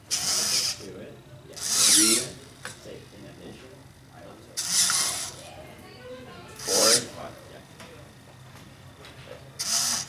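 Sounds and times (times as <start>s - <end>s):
servos whirring: 0.0s - 3.1s, 4.5s - 7.6s, 9.6s - 10.0s.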